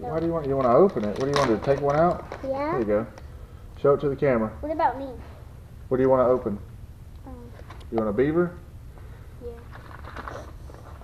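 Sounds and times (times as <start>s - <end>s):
packages rustling: 0.0s - 3.0s, 9.5s - 11.0s.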